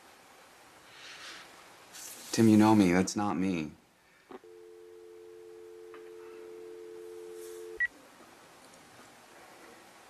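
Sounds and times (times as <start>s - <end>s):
dial tone: 4.4s - 7.9s.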